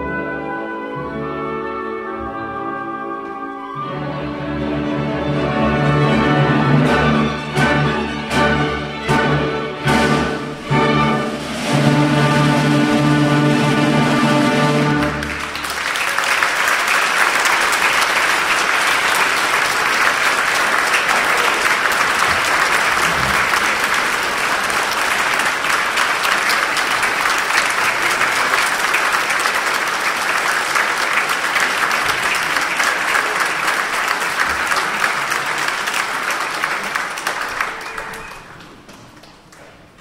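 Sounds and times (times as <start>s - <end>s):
audience applauding: 14.3s - 40.0s.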